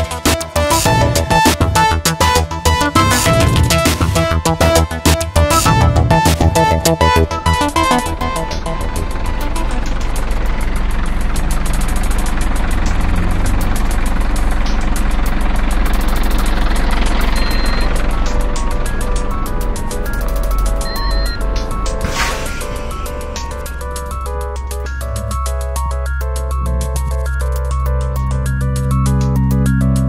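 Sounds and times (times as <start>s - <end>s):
deep bass: 0.0s - 30.0s
rapid ticking beats: 0.2s - 22.0s
electronic music: 0.6s - 8.9s, 18.2s - 29.3s
pitched synth notes: 2.7s - 5.0s
short rushing swell: 2.9s - 4.6s, 22.0s - 24.8s.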